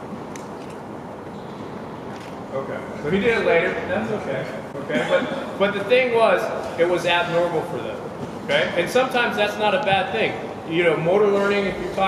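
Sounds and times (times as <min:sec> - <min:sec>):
sports hall background noise: 0:00.0 - 0:12.0.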